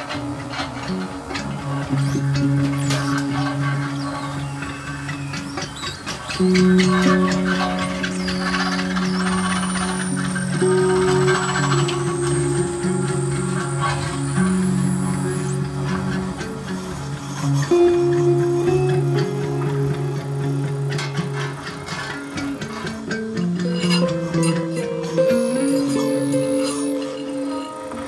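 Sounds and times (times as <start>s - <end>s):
band playing droning low notes: 0.0s - 28.0s
thin high whine: 0.0s - 28.0s.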